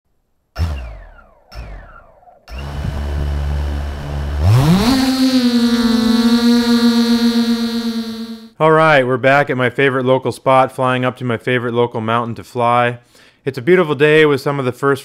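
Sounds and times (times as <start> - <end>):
quadcopter motors humming and whining: 0.6 - 8.5
short falling-pitch sounds: 0.6 - 8.6.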